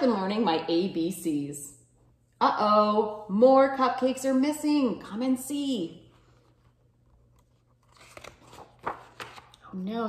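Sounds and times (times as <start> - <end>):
book pages turning: 6.1 - 9.6
paper crackles and taps: 7.2 - 9.6.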